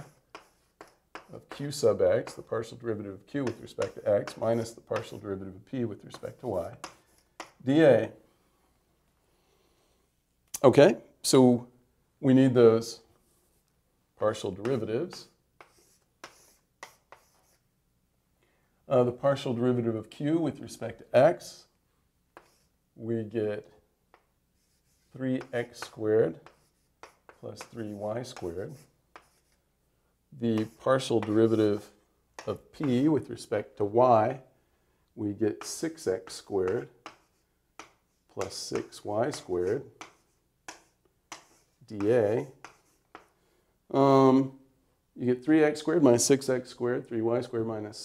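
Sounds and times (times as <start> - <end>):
faint writing strokes: 0.0 - 7.8, 13.0 - 17.7, 20.9 - 22.9, 23.6 - 29.8, 30.4 - 33.9, 35.5 - 43.6
person speaking: 0.0 - 8.2, 14.2 - 17.6, 24.6 - 29.6, 30.3 - 34.6, 35.2 - 48.0
writing taps on a board: 0.3 - 2.4, 6.8 - 7.6, 25.4 - 28.5, 36.6 - 43.3.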